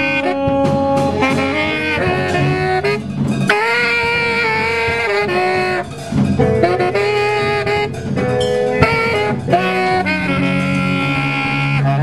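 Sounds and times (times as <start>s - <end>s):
wind instrument sustained notes: 0.0s - 12.0s.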